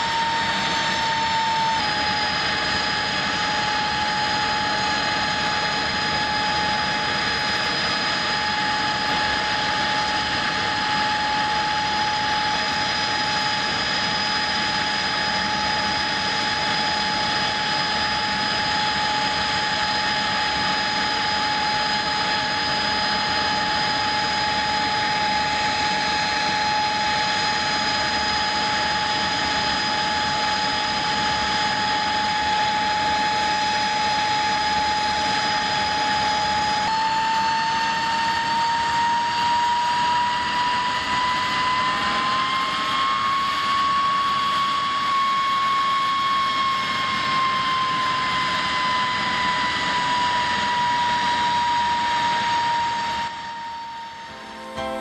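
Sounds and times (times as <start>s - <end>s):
jet engine whining: 0.0s - 55.0s.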